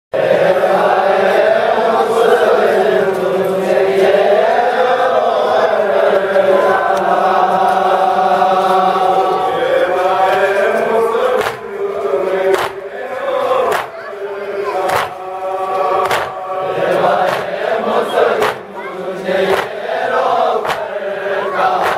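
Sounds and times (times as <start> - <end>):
men chanting a lament: 0.2 - 21.9.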